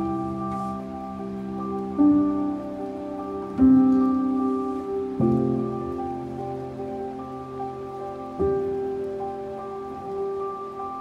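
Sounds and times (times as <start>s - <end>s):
slow soft piano music: 0.0s - 11.0s.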